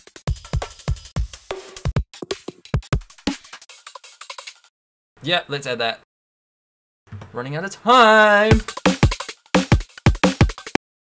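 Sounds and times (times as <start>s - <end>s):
fast drum break loop: 0.0s - 4.6s, 8.2s - 10.8s.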